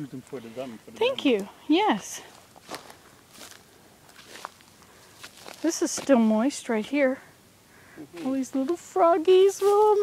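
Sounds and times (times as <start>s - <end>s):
footsteps on dry mud and grass: 2.2s - 6.4s.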